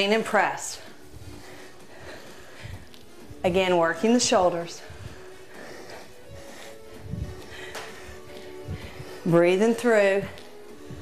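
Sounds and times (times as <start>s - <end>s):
quiet music with soft beat: 0.0s - 11.0s.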